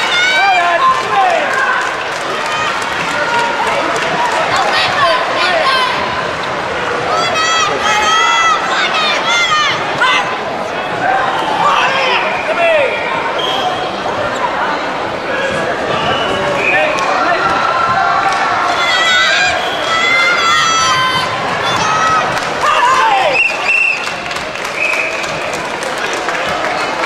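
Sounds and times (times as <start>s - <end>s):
spectators applauding: 0.0s - 5.1s, 19.7s - 27.0s
voices talking in echoing hall: 0.0s - 27.0s.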